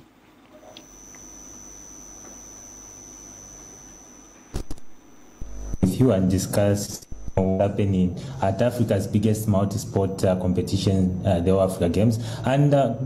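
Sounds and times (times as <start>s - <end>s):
electrical hum: 0.0s - 13.0s
high-pitched whine: 0.6s - 12.0s
sharp click: 4.2s - 5.0s.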